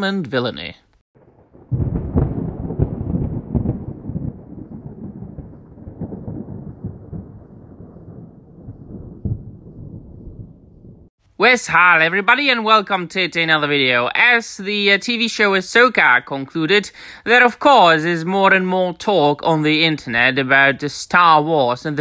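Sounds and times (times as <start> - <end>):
rumble like rolling thunder: 1.2 - 11.1.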